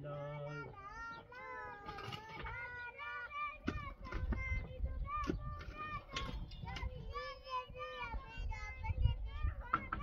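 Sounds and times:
child singing: 0.0 - 10.0.

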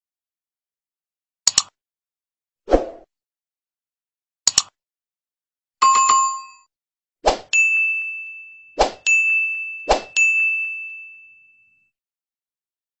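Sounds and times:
bright bell-like ding: 7.5 - 11.9.

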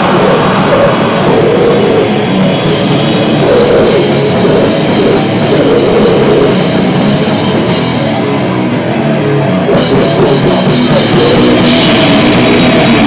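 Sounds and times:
cymbals crashing: 0.0 - 8.0
loud live grindcore band: 0.0 - 13.0.

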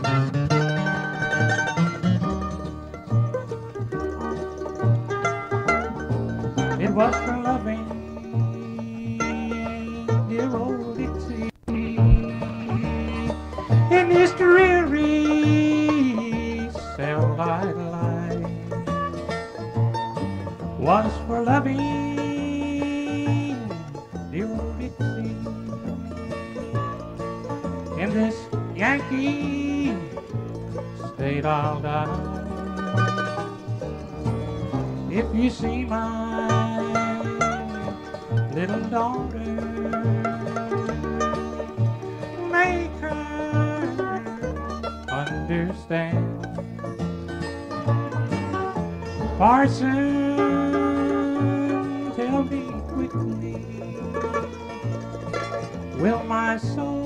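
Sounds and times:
bluegrass band playing: 0.0 - 57.0
walking bass line: 0.0 - 57.0.

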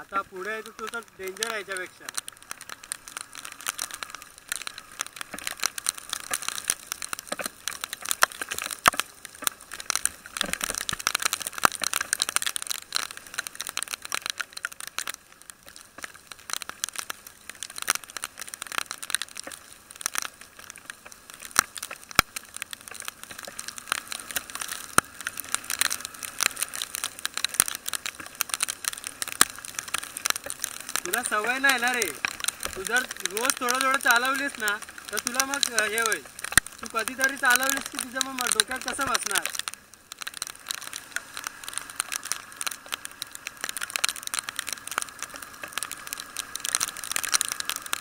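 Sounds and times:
rain ticking on camera housing: 0.0 - 48.0.

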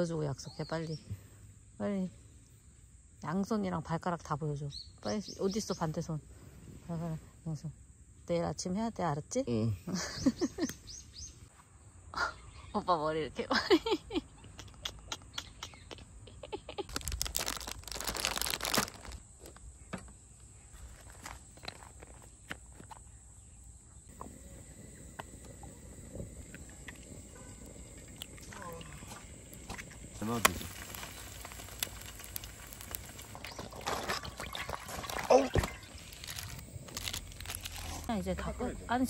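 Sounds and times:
person laughing: 13.6 - 17.2
rustling noise: 30.2 - 38.1.

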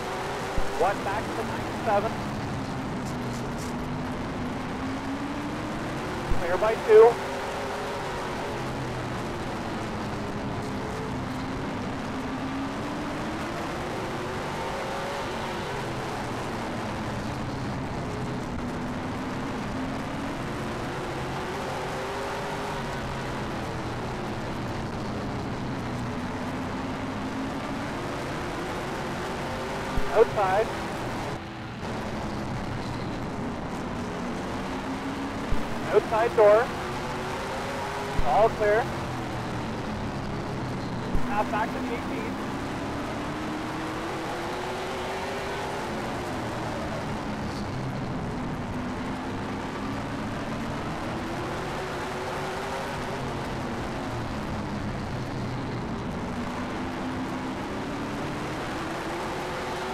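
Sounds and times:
race car engine from inside: 0.0 - 59.9.

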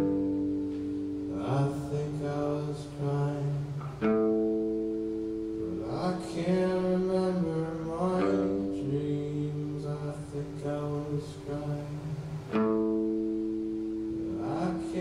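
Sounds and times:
acoustic guitar strummed chords: 0.0 - 15.0.

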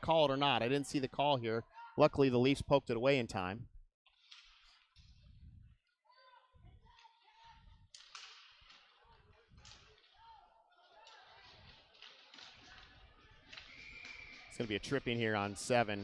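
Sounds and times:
distant voices in an arena: 4.2 - 16.0.

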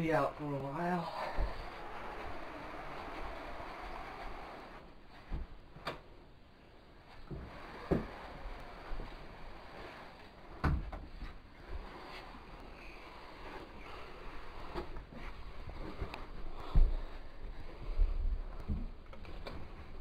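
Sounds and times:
soft rustling on carpet: 7.0 - 20.0.

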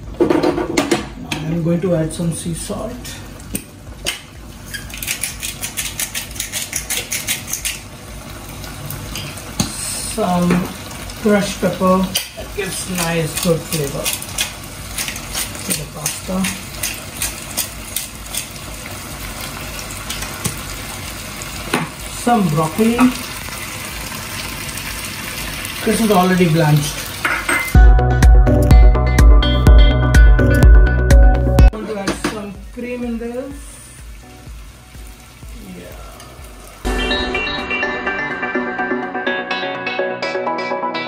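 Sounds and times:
sauce sizzling in frying pan: 3.1 - 27.8, 31.9 - 37.0
pepper mill crackling: 4.8 - 8.6, 11.4 - 20.6
loud background music: 27.8 - 31.7, 36.8 - 41.0.

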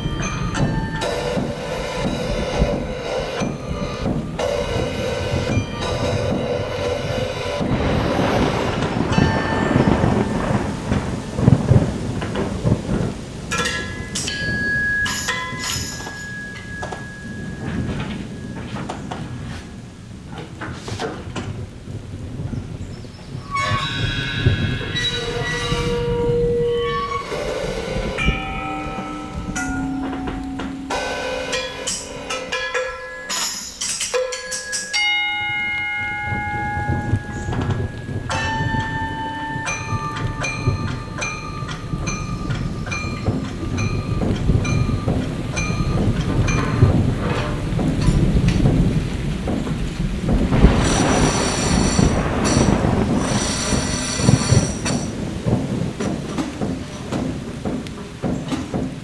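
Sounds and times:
metallic pings: 0.0 - 8.1, 8.7 - 11.3, 13.5 - 19.6, 23.5 - 48.7, 50.6 - 58.5
low drum rumble: 0.0 - 14.8, 36.8 - 59.0
struck metal ringing: 0.0 - 19.6, 23.5 - 59.0
cymbal wash: 26.7 - 43.1.

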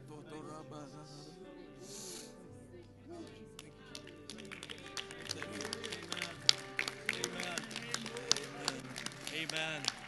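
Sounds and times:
background music: 0.0 - 10.0
congregation praying aloud: 3.1 - 10.0
hand claps: 3.6 - 10.0.

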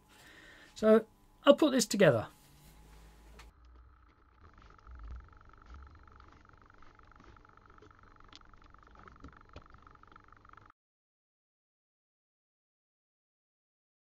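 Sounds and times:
faint steady high hum: 0.0 - 10.7.

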